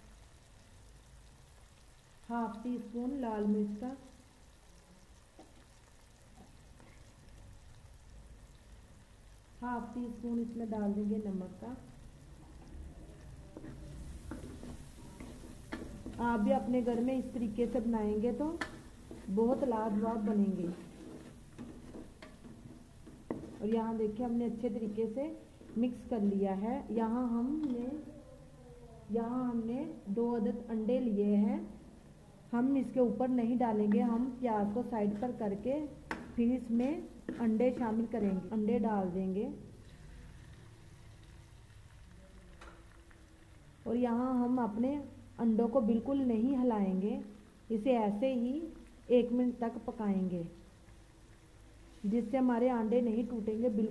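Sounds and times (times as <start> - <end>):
onions frying: 0.0 - 31.8, 32.5 - 53.9
eggs sizzling in hot oil: 0.0 - 53.9
wooden spoon scraping a pot: 13.5 - 24.0, 37.2 - 38.1.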